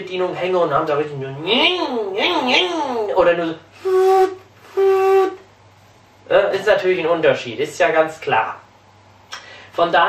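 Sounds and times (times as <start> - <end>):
man humming motor imitation: 3.8 - 5.4.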